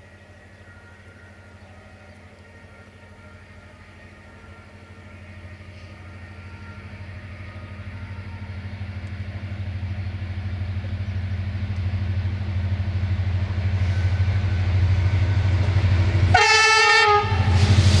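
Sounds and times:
diesel locomotive engine drone: 0.0s - 18.0s
train horn blast: 0.7s - 9.5s, 13.7s - 18.0s.

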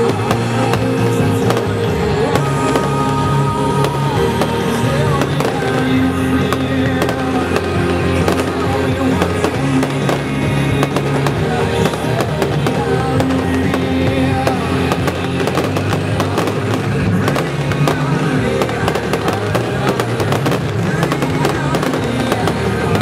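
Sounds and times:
fireworks bursting and crackling: 0.0s - 23.0s
loud music with held notes: 0.0s - 23.0s.

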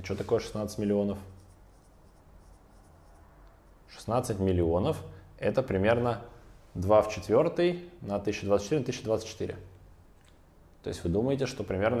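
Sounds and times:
person speaking: 0.0s - 2.6s
marker pen on whiteboard: 0.0s - 4.6s.

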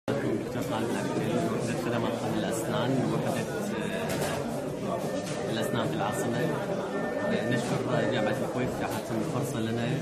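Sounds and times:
background chatter of voices: 0.1s - 10.0s.

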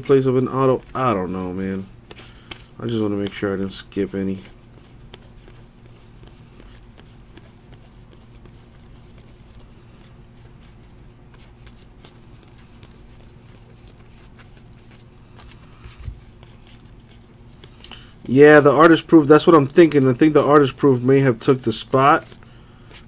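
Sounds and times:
cards ticking and rustling: 0.0s - 23.0s
steady low hum: 0.0s - 23.0s.

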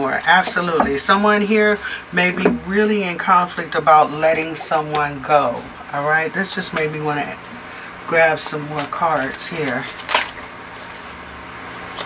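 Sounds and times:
cards rustling: 8.2s - 12.0s
cards snapping: 8.8s - 10.5s.

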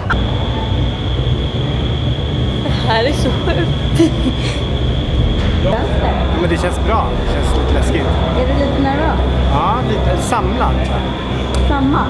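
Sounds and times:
thin high whine: 0.0s - 12.0s
wind tunnel air rushing: 0.0s - 12.0s.

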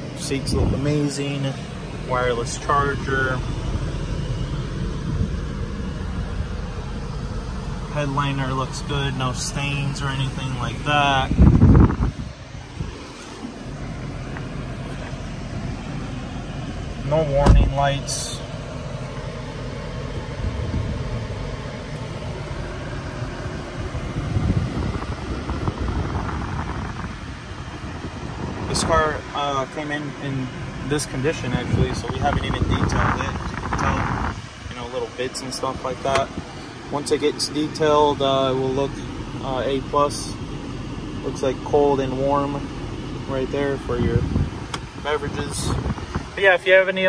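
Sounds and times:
low rumble with hiss in car: 0.0s - 47.0s.

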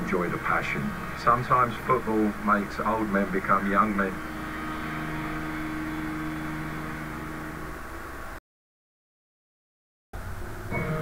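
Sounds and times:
low electric hum: 0.0s - 8.4s.

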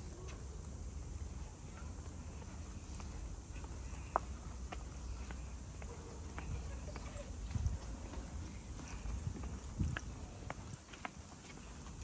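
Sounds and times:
footsteps on paving tiles: 0.0s - 12.0s.

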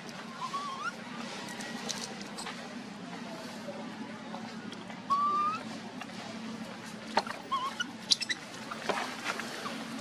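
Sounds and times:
wavering chirp: 7.3s - 8.5s.

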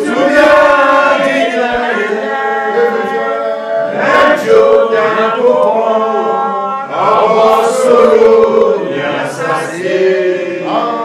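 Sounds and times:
slow worship chorus singing: 0.0s - 11.0s.

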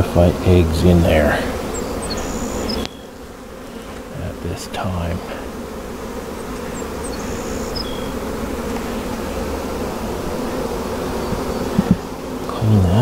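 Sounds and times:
bees buzzing: 0.0s - 13.0s.

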